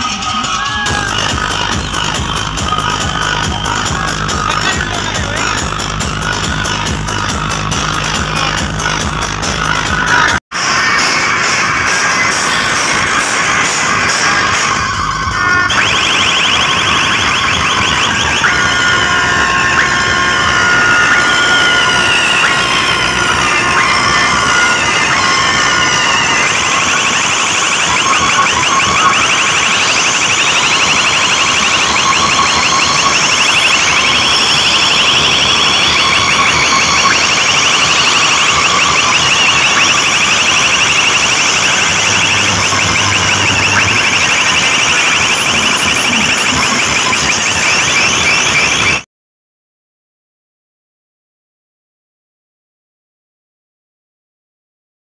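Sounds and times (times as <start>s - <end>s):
electronic siren effect: 0.0s - 49.1s.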